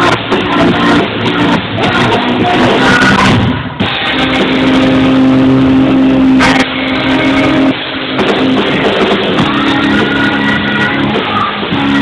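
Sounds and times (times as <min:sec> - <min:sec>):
loud rock band: 0:00.0 - 0:12.0.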